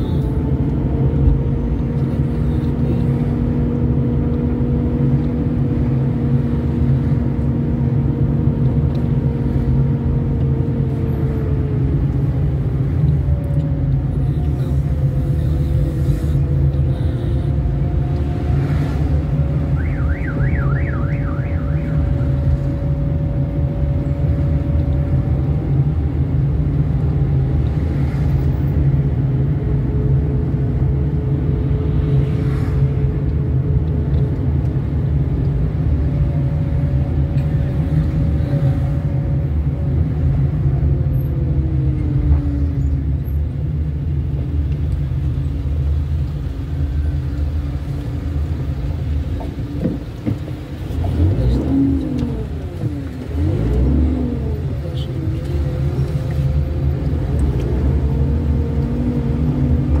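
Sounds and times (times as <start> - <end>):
car engine: 0.0 - 60.0
road noise: 0.0 - 60.0.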